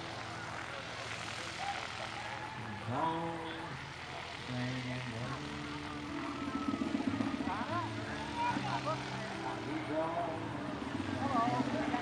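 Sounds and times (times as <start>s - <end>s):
scattered voices: 0.0s - 12.0s
steady engine hum: 0.0s - 12.0s.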